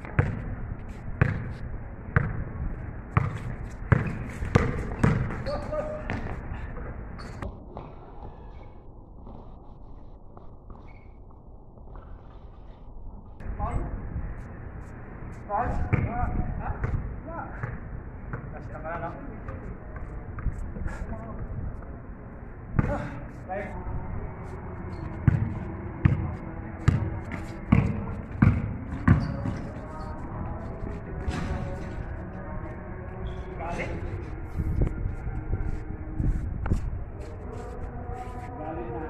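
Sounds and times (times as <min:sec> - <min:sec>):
basketball bouncing on pavement: 0:00.0 - 0:00.5, 0:01.2 - 0:01.6, 0:02.2 - 0:02.4, 0:03.2 - 0:06.4, 0:15.9 - 0:16.2, 0:25.2 - 0:26.3, 0:26.9 - 0:29.7.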